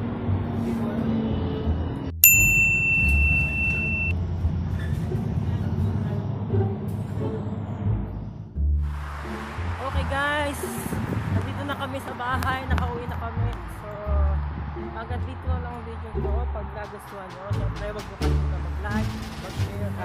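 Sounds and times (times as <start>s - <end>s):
bus engine rumble: 0.0s - 20.0s
bright bell ding: 2.2s - 4.1s.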